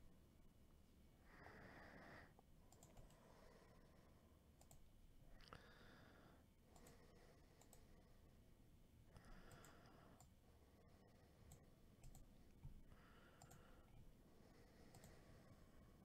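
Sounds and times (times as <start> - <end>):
faint computer mouse clicks: 2.7 - 3.2, 4.6 - 4.9, 6.7 - 7.9, 9.4 - 10.4, 11.4 - 13.8, 14.8 - 15.2.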